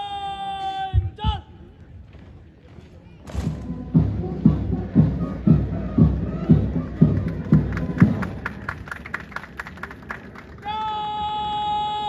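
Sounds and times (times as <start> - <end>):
bass drum marching beat: 3.3 - 8.7.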